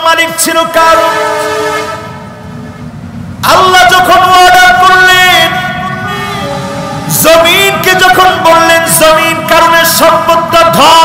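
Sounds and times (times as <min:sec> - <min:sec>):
man's voice over public address: 0:00.0 - 0:02.1, 0:03.4 - 0:11.0.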